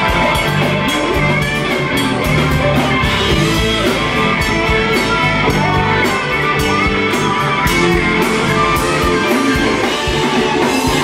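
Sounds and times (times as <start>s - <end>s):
bass: 0.0s - 11.0s
drum kit beats: 0.0s - 11.0s
electric guitar: 0.0s - 11.0s.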